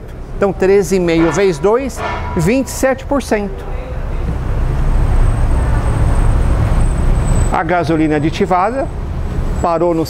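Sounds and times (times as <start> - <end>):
engine rumbling: 0.0 - 10.0.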